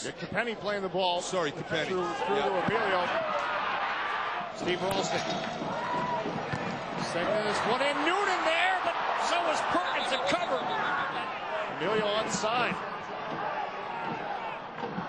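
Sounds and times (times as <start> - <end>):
stadium crowd noise: 0.0 - 15.0
man commentating: 7.0 - 12.8.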